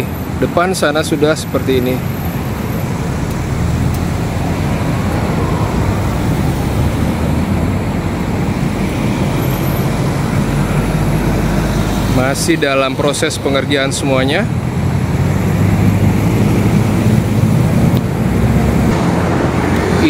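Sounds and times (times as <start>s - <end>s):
steady road traffic: 0.0s - 20.0s.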